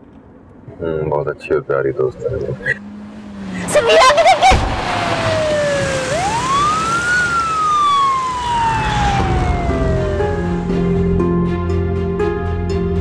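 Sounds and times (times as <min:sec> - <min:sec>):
tyre screech and car crash: 0:03.5 - 0:10.0
emergency vehicle siren wailing: 0:03.5 - 0:11.9.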